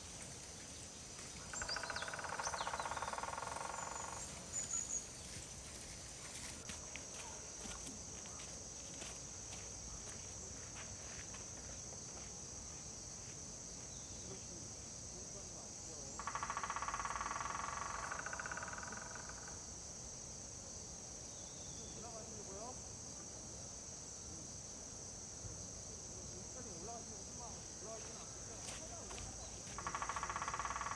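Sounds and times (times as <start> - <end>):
crickets and insects chirping: 0.0 - 30.9.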